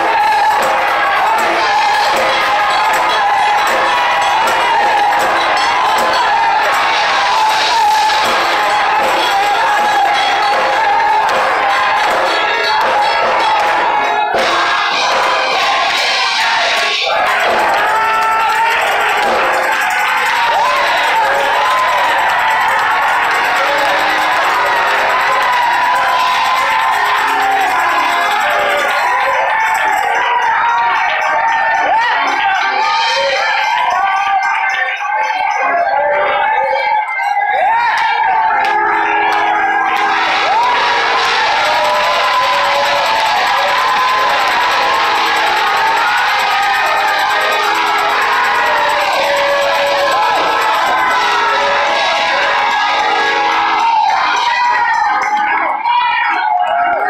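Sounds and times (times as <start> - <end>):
congregation shouting and cheering: 0.0 - 57.0
organ music with held chords: 38.7 - 42.2, 43.4 - 53.8.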